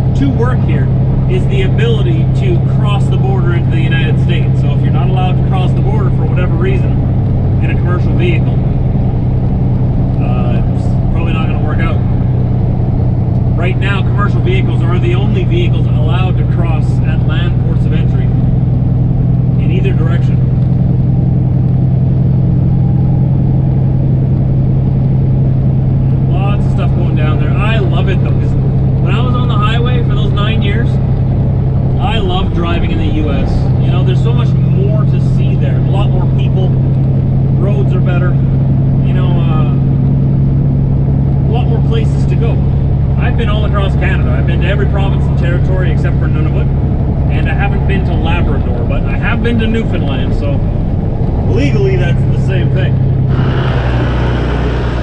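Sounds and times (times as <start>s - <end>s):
diesel truck engine drone: 0.0s - 55.0s
road noise: 0.0s - 55.0s.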